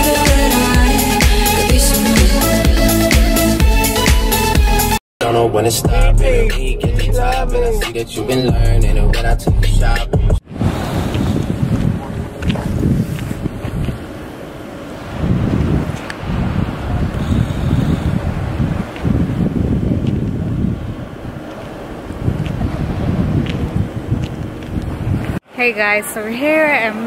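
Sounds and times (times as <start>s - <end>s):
music: 0.0s - 10.4s
wind buffeting microphone: 10.3s - 25.4s
ocean surf: 10.5s - 27.0s.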